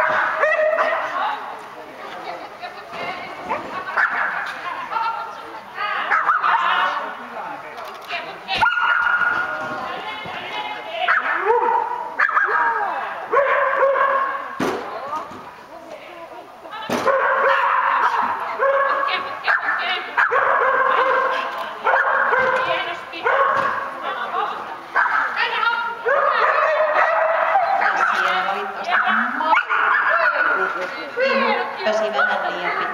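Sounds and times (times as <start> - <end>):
dog barking and yipping: 26.1 - 28.2, 28.9 - 30.6.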